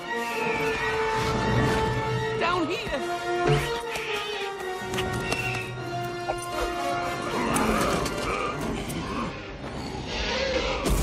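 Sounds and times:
dramatic orchestral music: 0.0s - 9.7s.

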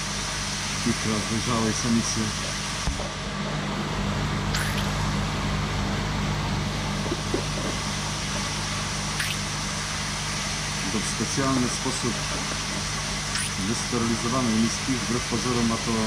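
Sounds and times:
machinery humming and hissing: 0.0s - 16.0s.

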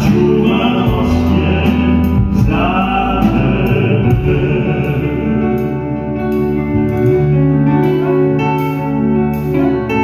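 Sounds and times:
male vocal trio singing a ballad: 0.0s - 6.0s
live band playing: 0.0s - 10.0s.

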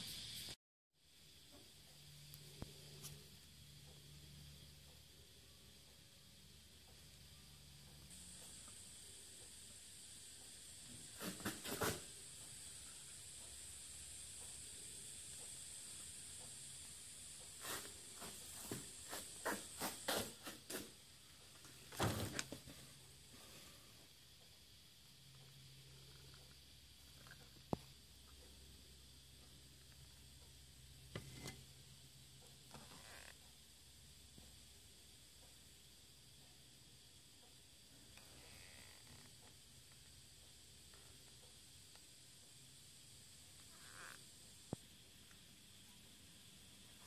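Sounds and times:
faint steady hiss: 0.0s - 47.0s.

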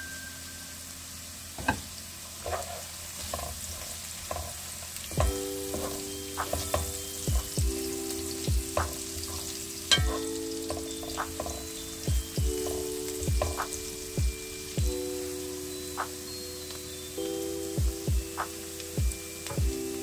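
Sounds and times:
food sizzling in a frying pan: 0.0s - 20.0s
background music with low beat: 5.1s - 20.0s.

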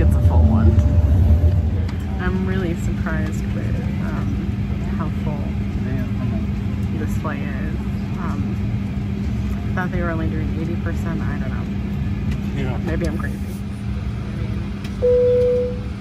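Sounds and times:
indistinct voices: 0.0s - 5.4s
heavy low rumble: 0.0s - 16.0s
jet cabin hum and air noise: 0.0s - 16.0s
low steady tone: 15.0s - 16.0s.

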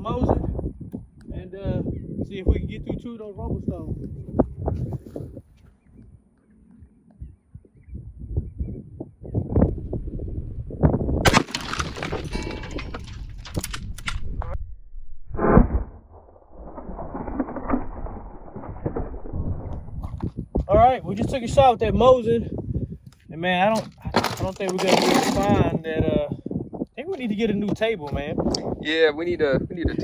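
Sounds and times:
sharp cracks: 11.2s - 14.6s, 15.3s - 20.4s.

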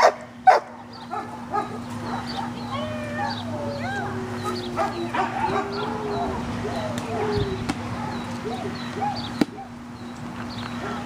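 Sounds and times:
dog whining and whimpering: 2.6s - 9.8s.

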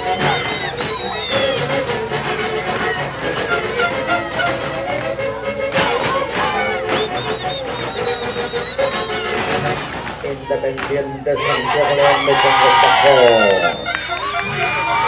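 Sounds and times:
band playing dance music: 0.0s - 15.0s
saxophones: 0.0s - 15.0s
violins: 0.0s - 15.0s.

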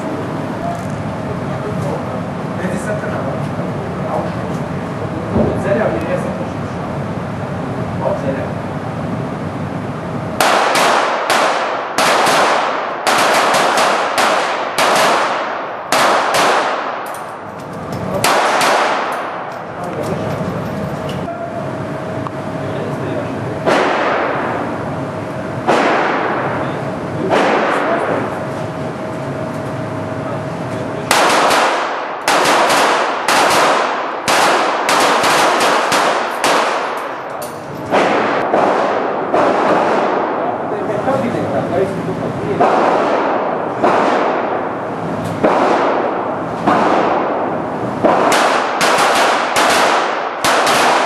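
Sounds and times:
pistol shots echoing: 10.4s - 17.5s, 18.2s - 19.5s, 23.6s - 24.6s, 25.6s - 26.6s, 27.3s - 28.2s, 31.1s - 40.5s, 42.6s - 44.8s, 45.4s - 51.0s.

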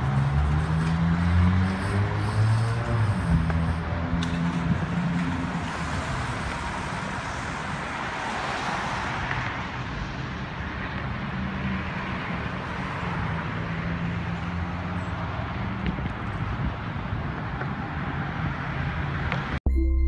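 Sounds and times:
vehicle passing: 0.0s - 9.9s
road traffic: 0.0s - 19.6s.

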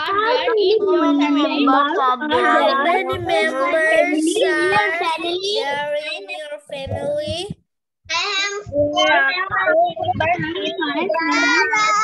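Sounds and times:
children's sing-song voices: 0.0s - 12.0s.

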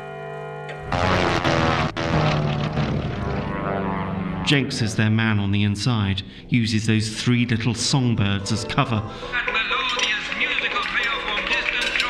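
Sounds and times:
propeller engine drone: 0.7s - 12.0s.

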